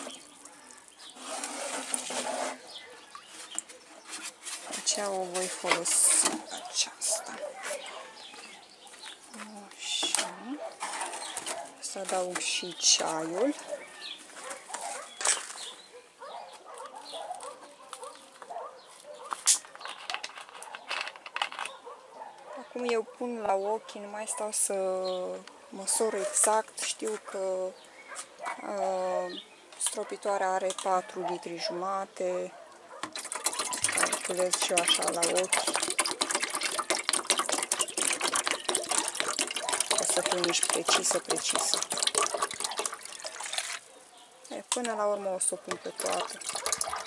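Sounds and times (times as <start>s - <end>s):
water splashes and drips: 0.0s - 7.4s, 33.0s - 47.0s
water gurgling into can: 33.0s - 43.9s, 45.6s - 47.0s.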